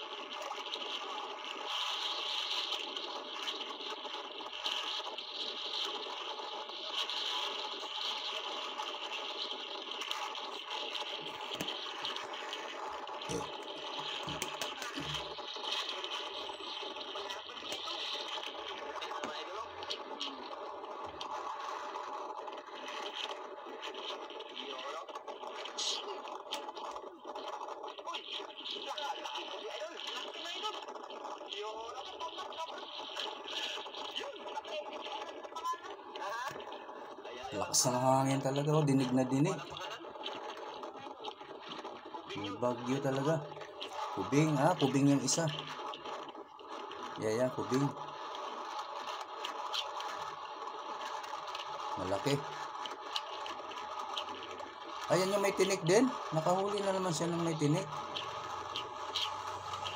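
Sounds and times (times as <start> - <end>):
sea noise: 0.0 - 59.9
indistinct voices: 13.3 - 15.3, 42.3 - 45.7.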